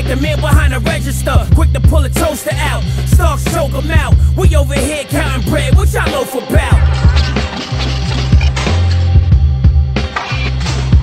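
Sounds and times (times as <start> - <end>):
deep bass line: 0.0 - 11.0
hip-hop beat: 0.0 - 11.0.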